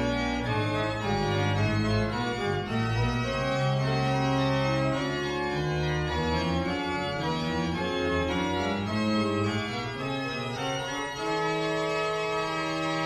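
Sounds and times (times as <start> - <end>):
organ playing held chords: 0.0 - 13.0.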